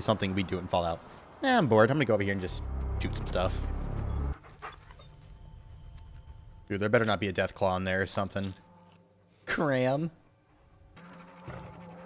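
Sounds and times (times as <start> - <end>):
dog whimpering and panting: 4.3 - 5.3, 11.1 - 12.0.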